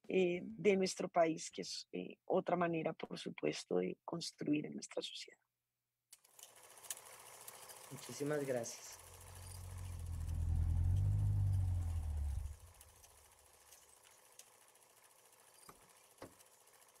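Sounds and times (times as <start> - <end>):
faint ticks: 9.1 - 17.0
deep low rumbling swell: 9.6 - 12.7.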